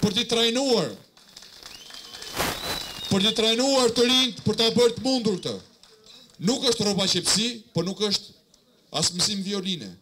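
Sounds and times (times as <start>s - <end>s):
faint high whistle: 1.7s - 3.4s.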